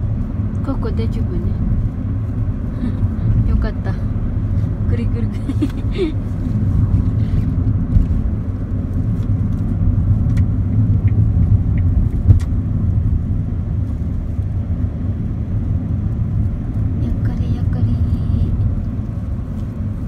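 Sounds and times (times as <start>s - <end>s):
car cabin road rumble: 0.0s - 20.0s.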